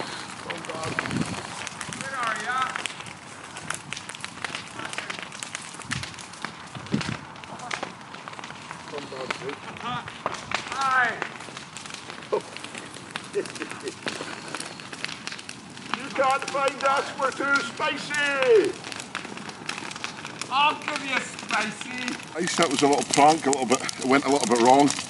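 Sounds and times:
twigs snapping and crunching: 0.0 - 25.0.

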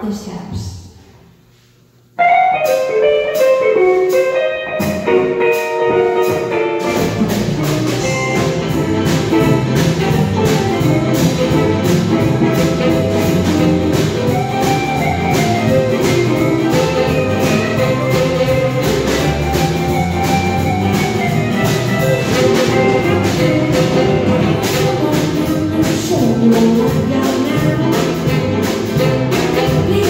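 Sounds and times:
lead electric guitar: 2.2 - 24.9
blues band playing: 2.2 - 30.0.

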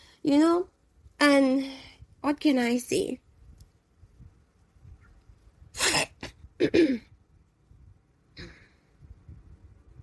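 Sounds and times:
woman clearing her throat: 5.8 - 7.1.

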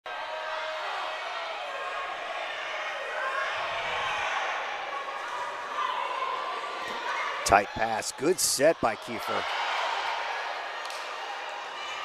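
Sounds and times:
crowd chattering and calling out: 0.8 - 12.0.

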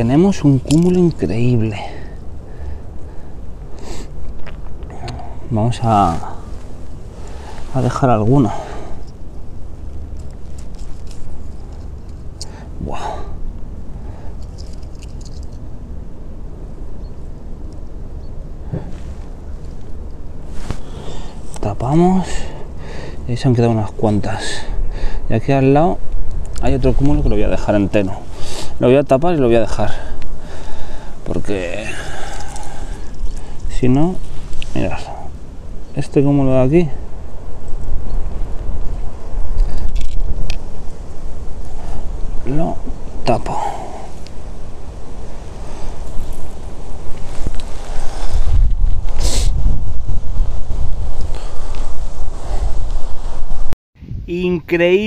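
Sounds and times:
wind buffeting microphone: 15.6 - 55.0.

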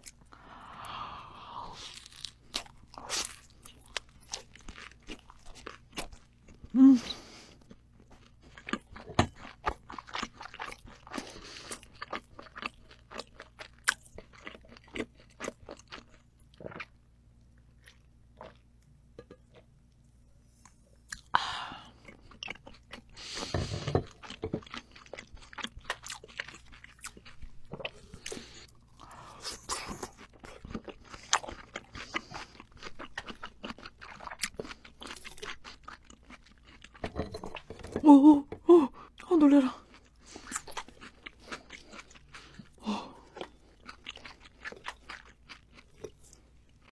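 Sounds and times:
chewing crisp greens: 1.8 - 18.7, 22.0 - 37.0, 39.0 - 46.9.

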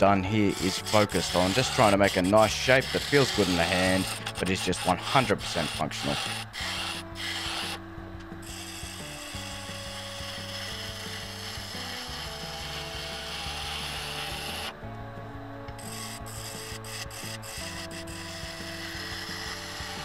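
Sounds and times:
turning tool scraping wood: 0.0 - 7.8, 8.4 - 14.8, 15.7 - 20.0
lathe motor hum: 0.3 - 20.0.

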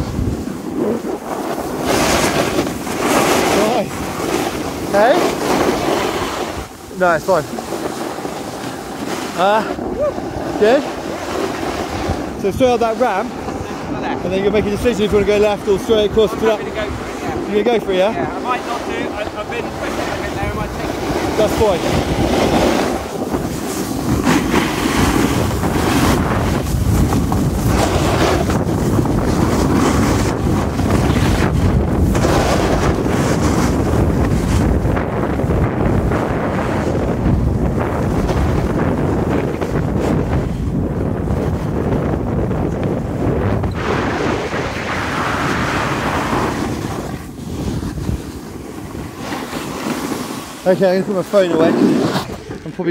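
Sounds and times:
snowboard scraping packed snow: 0.0 - 52.9
wind buffeting microphone: 0.0 - 52.9.

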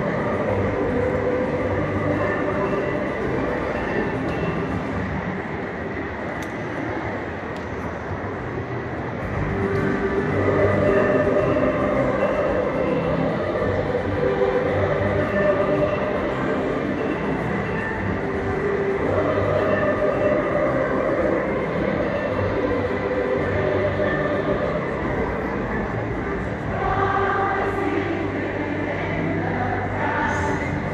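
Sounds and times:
choir singing held notes: 0.0 - 5.1, 9.4 - 30.9
crowd murmur: 0.0 - 30.9.

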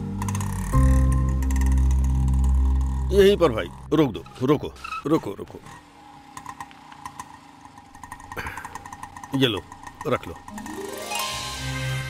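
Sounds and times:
small engine idling: 0.0 - 11.1.

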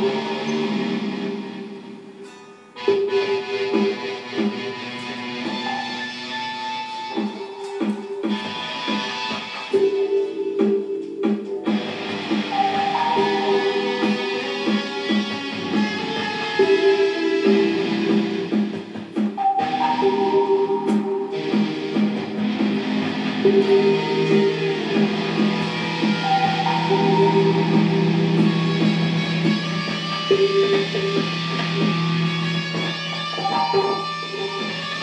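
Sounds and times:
dubstep backing track: 0.0 - 35.0
electric guitar playing: 0.0 - 35.0.

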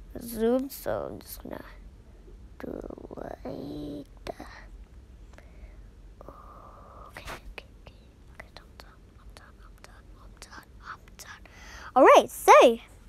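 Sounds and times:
low background hum: 0.0 - 13.0.

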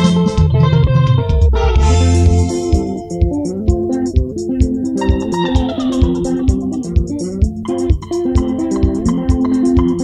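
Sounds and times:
electric guitars and bass: 0.0 - 10.0
hi-hat ticks: 2.7 - 10.0
kick drum beat: 6.0 - 10.0.

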